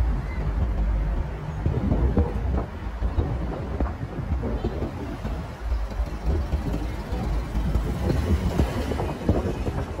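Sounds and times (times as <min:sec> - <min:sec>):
street traffic: 0:00.0 - 0:10.0
vehicle road noise: 0:00.0 - 0:10.0
wind buffeting microphone: 0:00.0 - 0:10.0.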